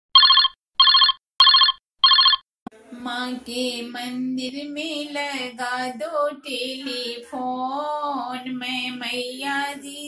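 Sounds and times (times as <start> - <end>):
telephone ringing: 0.2 - 2.4.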